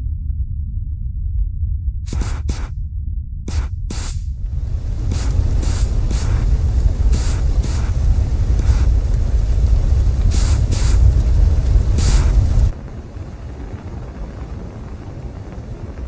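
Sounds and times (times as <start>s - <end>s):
deep rumble sound effect: 0.0s - 16.0s
short bursts of hiss: 2.1s - 2.7s, 3.5s - 4.2s, 5.1s - 6.4s, 7.1s - 8.0s, 12.0s - 12.5s.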